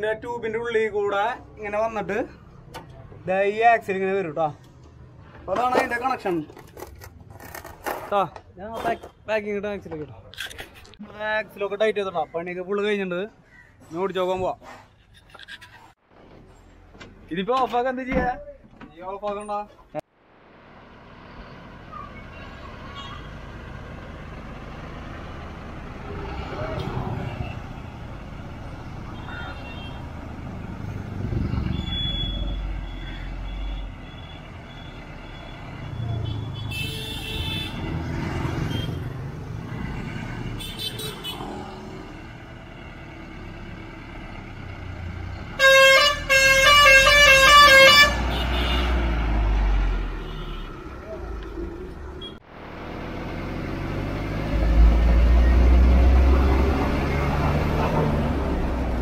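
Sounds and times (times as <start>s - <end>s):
road traffic passing: 0.0s - 17.4s, 19.8s - 59.0s
bus engine rumble: 18.5s - 33.5s, 34.4s - 59.0s
pulsing multi-tone vehicle horn: 31.7s - 38.0s, 38.7s - 39.1s, 45.6s - 49.0s, 50.2s - 50.8s.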